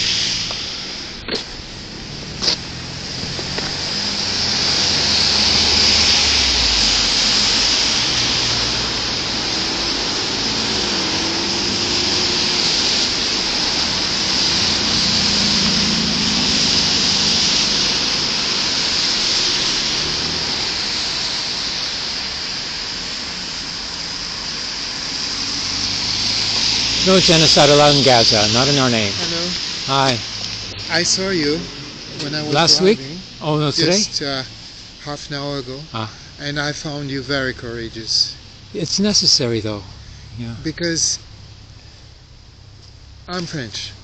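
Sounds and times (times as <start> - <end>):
car engines running low: 0.0 - 44.0
tyres hissing on wet road: 0.0 - 44.0.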